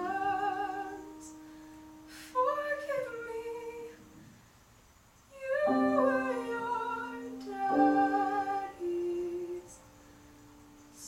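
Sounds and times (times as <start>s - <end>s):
woman singing with vibrato: 0.0s - 1.3s, 2.1s - 4.0s, 5.3s - 9.8s
piano accompaniment: 0.0s - 4.3s, 5.4s - 11.0s.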